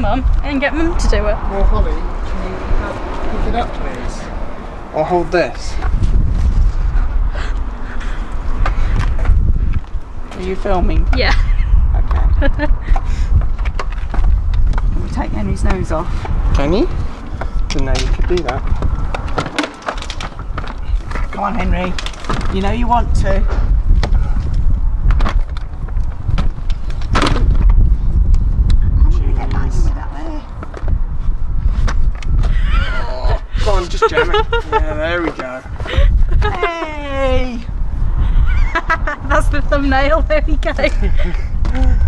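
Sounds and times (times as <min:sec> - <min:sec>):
wind rumble on microphone: 0:00.0 - 0:42.0.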